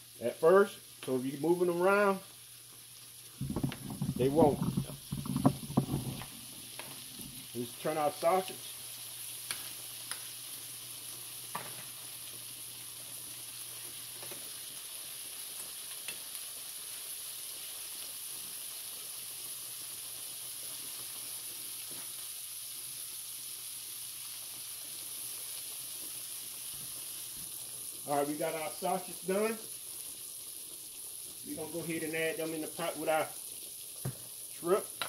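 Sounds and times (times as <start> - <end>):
sausage sizzling in a skillet: 0.0 - 35.0.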